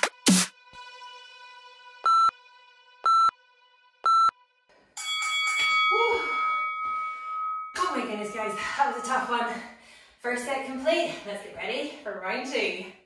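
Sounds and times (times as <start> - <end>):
short electronic beeps: 2.1 - 2.3, 3.1 - 3.3, 4.1 - 4.3.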